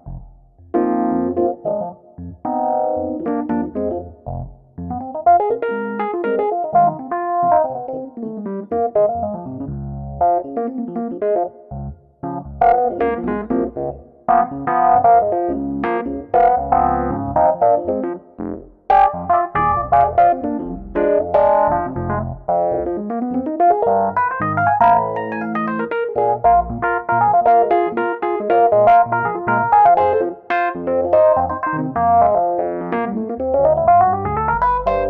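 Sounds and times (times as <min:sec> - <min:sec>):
electric piano jazz improvisation: 0:00.0 - 0:35.0.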